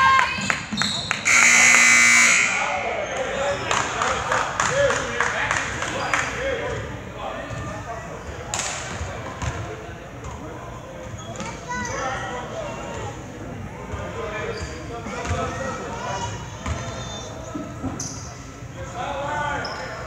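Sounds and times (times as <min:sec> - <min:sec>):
crowd voices: 0:00.0 - 0:20.0
shoe squeaks: 0:00.7 - 0:01.2, 0:11.1 - 0:12.0, 0:14.4 - 0:15.6, 0:16.2 - 0:18.5, 0:19.5 - 0:20.0
scoreboard buzzer: 0:01.2 - 0:02.8.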